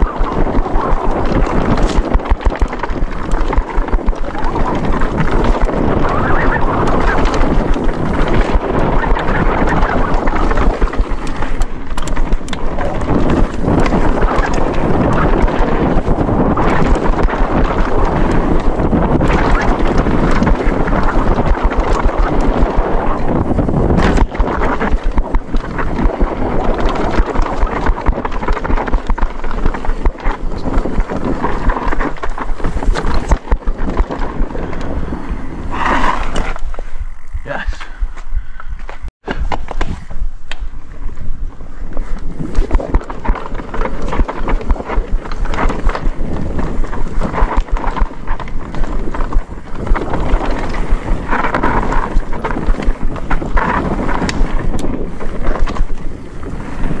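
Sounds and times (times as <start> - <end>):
bike clattering and rattling: 0.0 - 37.5, 38.7 - 57.0
tyres on dirt: 0.0 - 57.0
wind buffeting microphone: 0.0 - 57.0.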